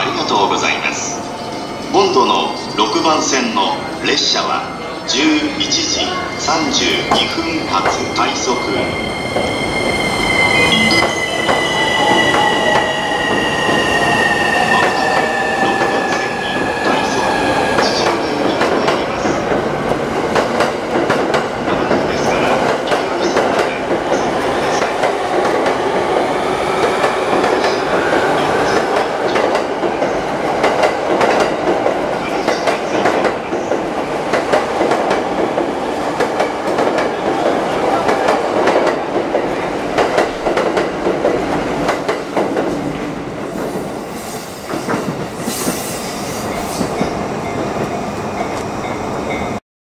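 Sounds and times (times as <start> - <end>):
electric train whining: 0.7 - 21.0.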